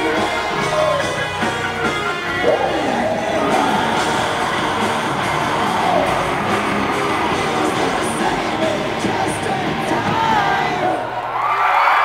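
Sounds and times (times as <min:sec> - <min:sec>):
live rock band playing loudly: 0:00.0 - 0:11.0
crowd cheering: 0:00.0 - 0:12.0.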